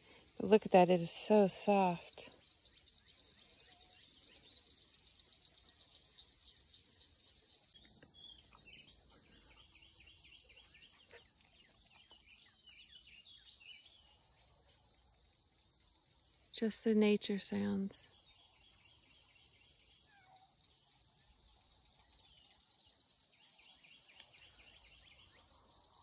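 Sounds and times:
crickets trilling: 0.0 - 26.0
bird chirping: 2.0 - 15.2, 17.0 - 26.0.

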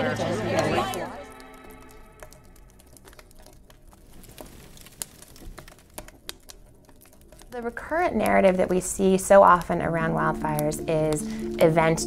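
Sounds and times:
faint crackling clicks: 1.3 - 12.0.

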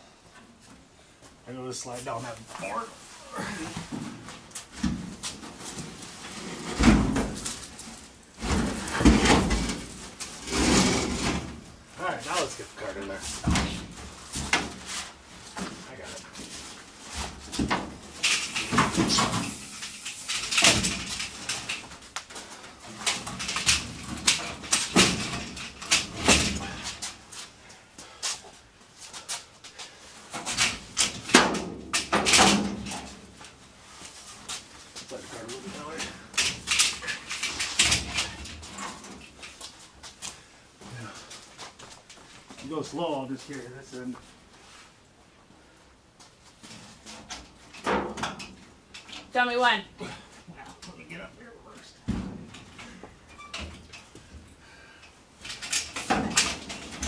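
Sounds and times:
metal clunks and scrapes: 8.4 - 11.6.

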